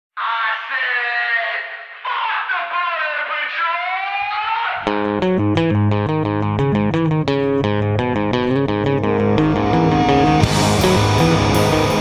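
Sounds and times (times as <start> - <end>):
voice wailing: 2.0 - 4.9.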